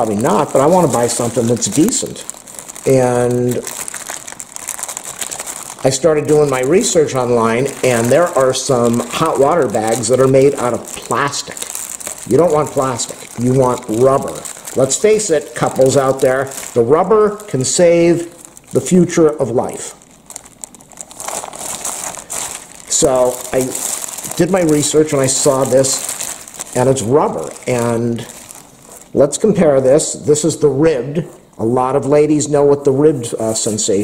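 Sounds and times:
plastic bag crinkling: 0.0s - 30.7s.

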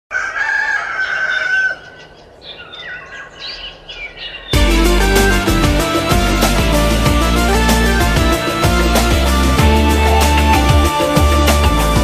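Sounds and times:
rooster crowing: 0.1s - 2.0s
bird chirps: 1.0s - 4.6s.

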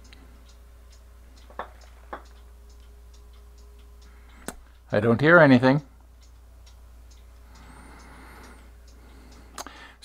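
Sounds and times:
faint ticks: 0.0s - 4.9s, 5.8s - 10.0s
low hum: 0.0s - 10.0s.

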